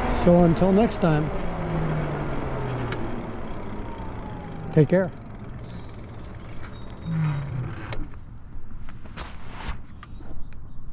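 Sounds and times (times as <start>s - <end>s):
low electric motor hum: 0.0s - 8.7s
tyre noise: 0.0s - 9.7s
wind: 0.0s - 10.9s.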